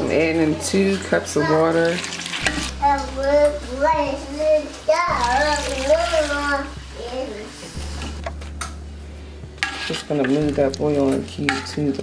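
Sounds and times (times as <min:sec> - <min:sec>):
water pouring into pot: 0:00.8 - 0:02.8.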